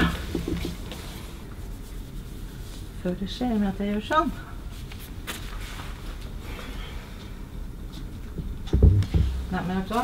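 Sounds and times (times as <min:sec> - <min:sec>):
low room noise: 0:00.0 - 0:10.0
loud dull thump: 0:08.7 - 0:09.5.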